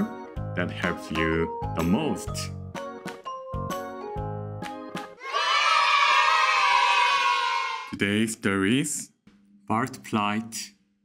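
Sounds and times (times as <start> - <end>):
children cheering: 5.2 - 7.9.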